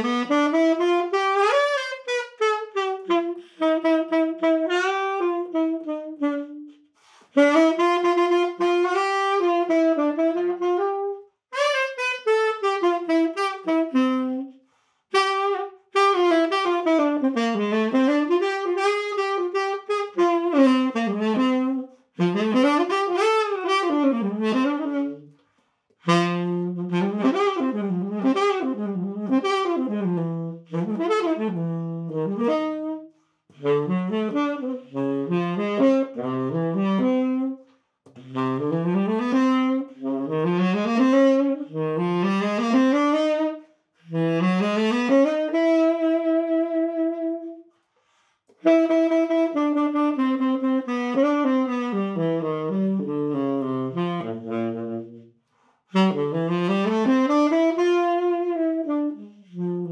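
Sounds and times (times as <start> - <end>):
solo tenor saxophone: 0.0 - 59.9.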